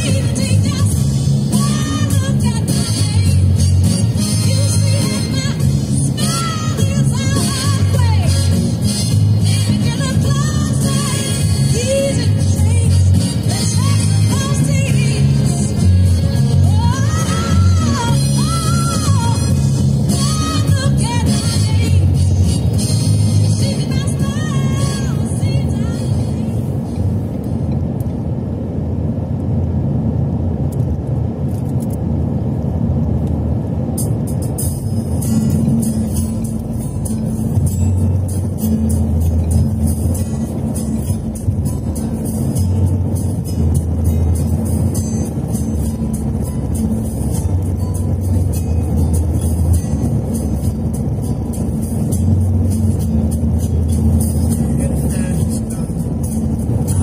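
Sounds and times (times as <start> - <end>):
music with bass: 0.0 - 27.2, 33.9 - 57.0
road and tyre noise in car: 0.0 - 57.0.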